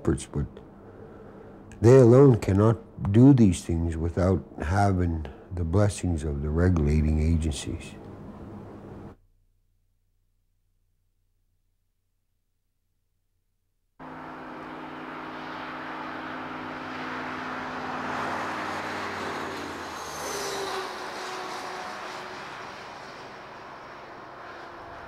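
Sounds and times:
highway traffic hum: 0:00.0 - 0:09.2, 0:14.0 - 0:25.0
vehicle passing by: 0:14.0 - 0:25.0.

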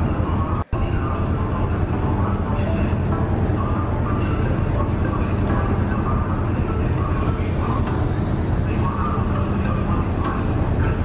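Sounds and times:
ship diesel engines droning: 0:00.0 - 0:11.0.

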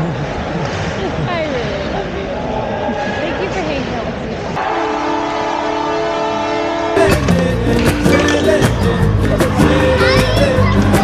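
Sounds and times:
goal horn chord: 0:04.6 - 0:09.3.

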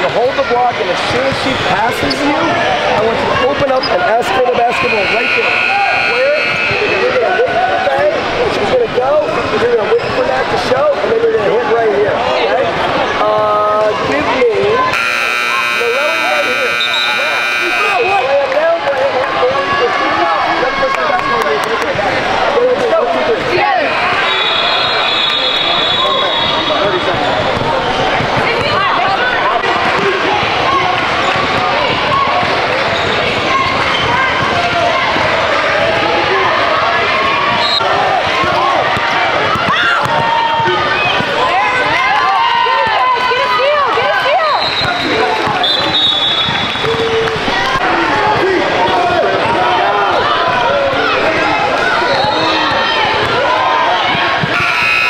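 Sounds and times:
players and spectators voices: 0:00.0 - 0:55.0
scoreboard buzzer: 0:04.4 - 0:07.2, 0:14.8 - 0:18.4, 0:54.5 - 0:55.0.

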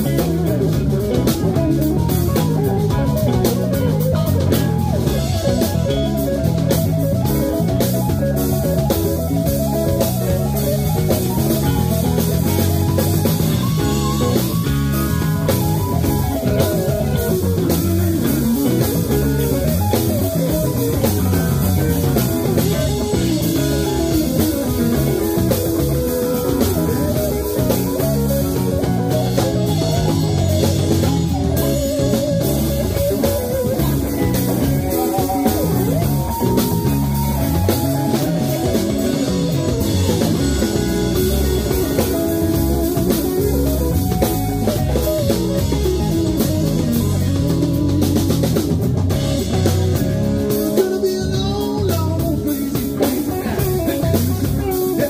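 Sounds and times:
drum kit: 0:00.0 - 0:55.0
electric guitar: 0:00.0 - 0:55.0.

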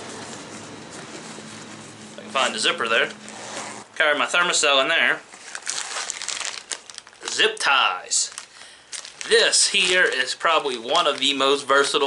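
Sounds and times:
rustling and crinkling in a pocket: 0:00.0 - 0:03.9, 0:05.3 - 0:12.0.

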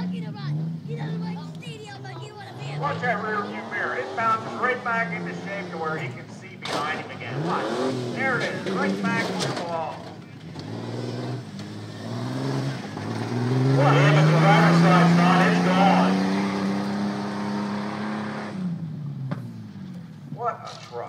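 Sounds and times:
pickup engine revving hard: 0:00.0 - 0:19.7.

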